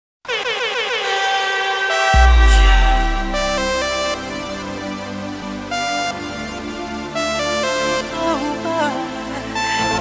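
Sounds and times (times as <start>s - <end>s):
wobbling synthesizer chord: 2.1s - 5.1s.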